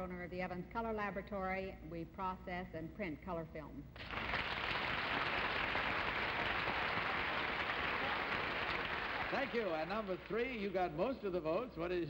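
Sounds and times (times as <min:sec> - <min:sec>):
audience applauding: 0:04.0 - 0:10.8.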